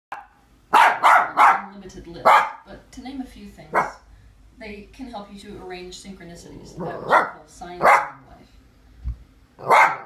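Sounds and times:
small dog barking: 0.1 - 2.7, 3.7 - 4.0, 6.9 - 8.3, 9.6 - 10.0.

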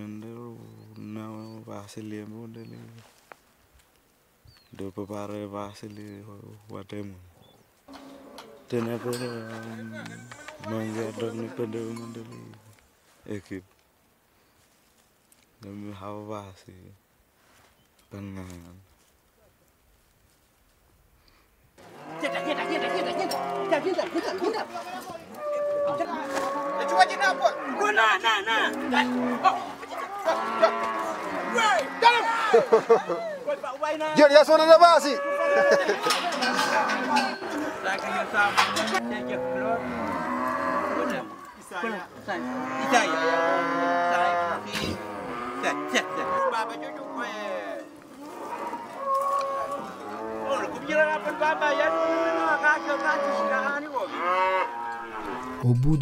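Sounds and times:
cattle mooing: 21.8 - 33.0, 34.6 - 56.0.

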